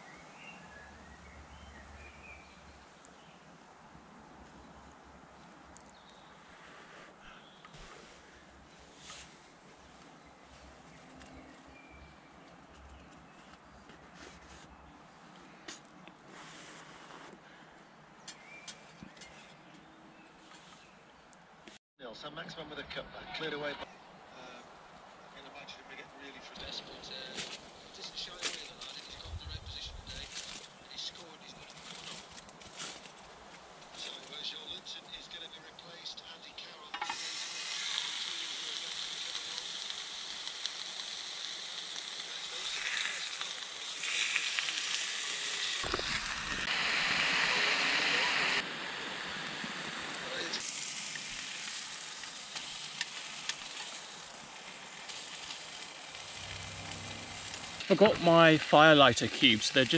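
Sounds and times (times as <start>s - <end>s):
meat sizzling in a frying pan: 37.0s - 59.9s.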